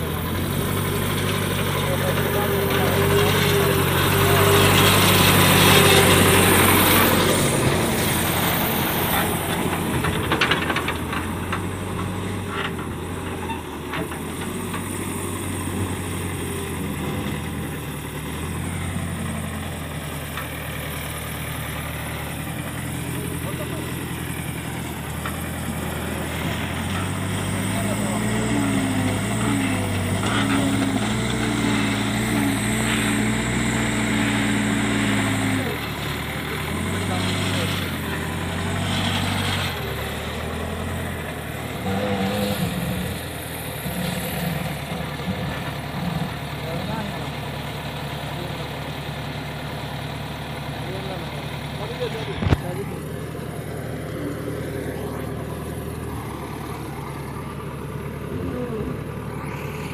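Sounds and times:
diesel engine running: 0.0s - 59.9s.

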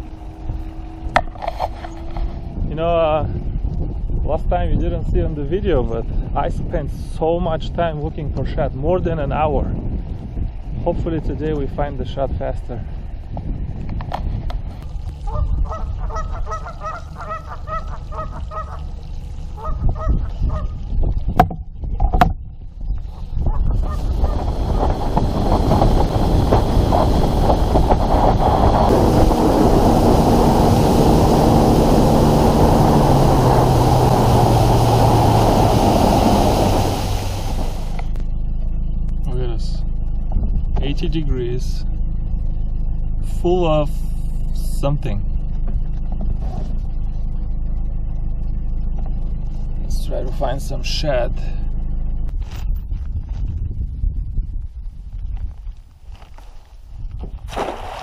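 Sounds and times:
boat engine: 0.0s - 2.8s, 14.9s - 20.7s, 23.2s - 52.3s
wind and water noise: 0.0s - 38.3s, 52.4s - 58.0s
goose honking: 15.3s - 18.8s.

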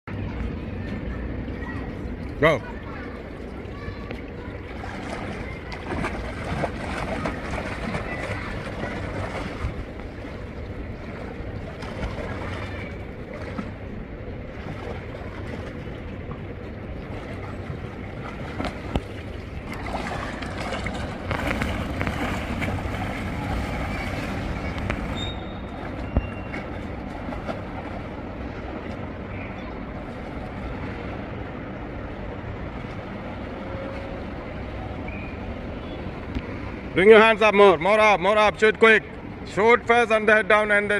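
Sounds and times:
noisy background: 0.0s - 40.9s
pool water splashing: 0.2s - 40.9s.

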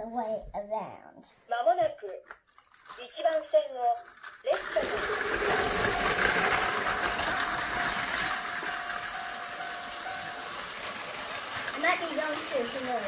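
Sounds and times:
toy train motor whirring: 2.5s - 13.0s.

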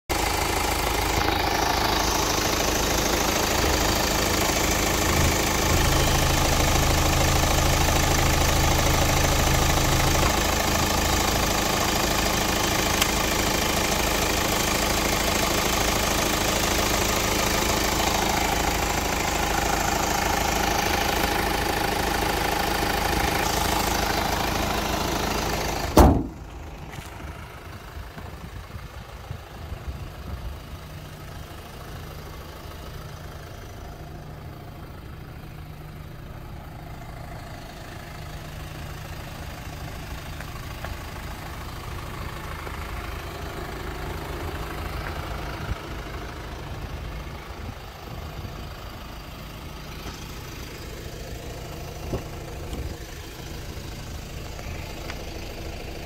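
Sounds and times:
diesel engine idling: 0.1s - 56.0s
sharp thump: 25.9s - 26.4s.

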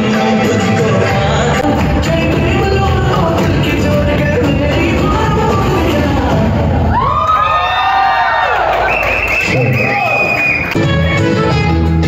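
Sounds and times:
dance music: 0.0s - 12.0s
party guests cheering and whooping: 6.3s - 10.9s
long steady whistle: 8.8s - 10.8s.

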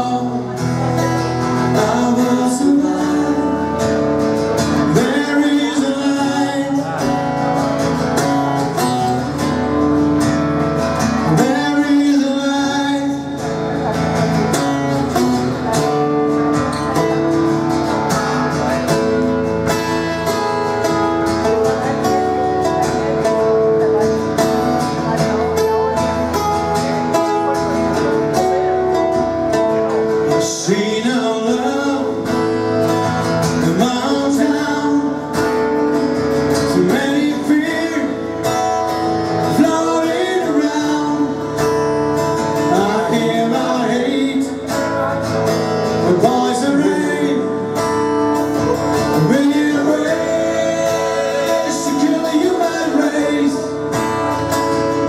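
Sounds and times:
person singing: 0.0s - 8.3s, 28.4s - 35.8s, 36.6s - 41.7s, 45.9s - 54.3s
acoustic guitar: 0.0s - 55.0s
electric guitar: 0.0s - 55.0s.

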